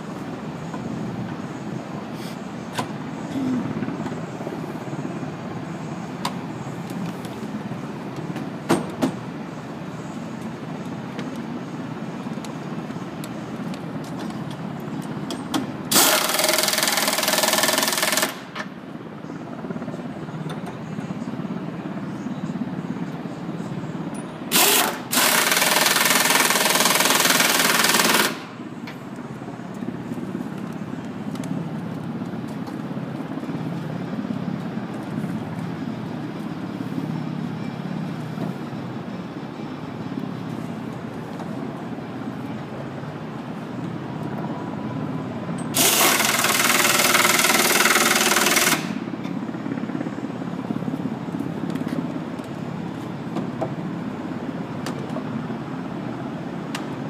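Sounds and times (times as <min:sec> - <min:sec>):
steady background rumble: 0:00.0 - 0:15.9, 0:18.4 - 0:25.2, 0:28.4 - 0:45.8
pneumatic impact wrench hammering: 0:15.3 - 0:18.7, 0:24.5 - 0:28.5, 0:45.6 - 0:49.0.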